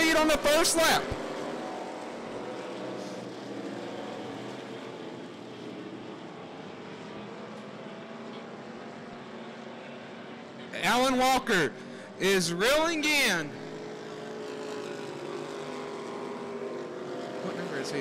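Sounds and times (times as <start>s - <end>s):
race car engines droning: 0.0s - 18.0s.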